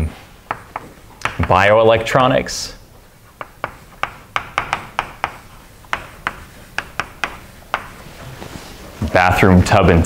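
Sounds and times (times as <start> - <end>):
chalk tapping on chalkboard: 0.4 - 1.7, 3.3 - 8.2.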